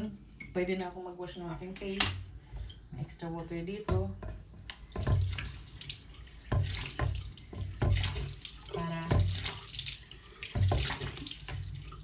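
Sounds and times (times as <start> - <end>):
water pouring and splashing: 4.9 - 12.0.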